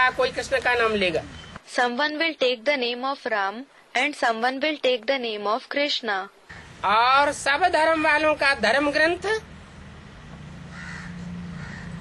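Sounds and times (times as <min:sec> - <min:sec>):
steady low hum: 0:06.4 - 0:12.0
crow cawing faintly: 0:06.5 - 0:06.8, 0:10.6 - 0:12.0.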